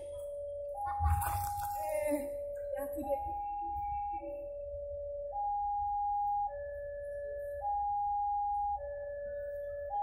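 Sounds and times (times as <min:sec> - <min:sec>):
level crossing two-tone alarm: 0:00.1 - 0:10.0.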